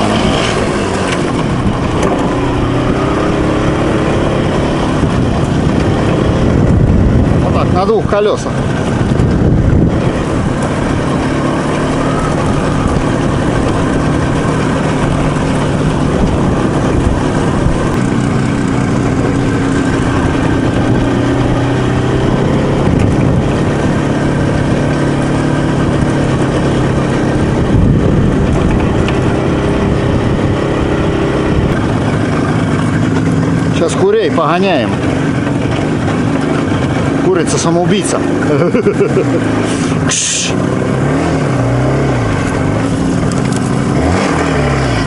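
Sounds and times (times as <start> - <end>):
two-stroke motorcycle engine running: 0.0 - 45.0
wind and road noise: 0.0 - 45.0.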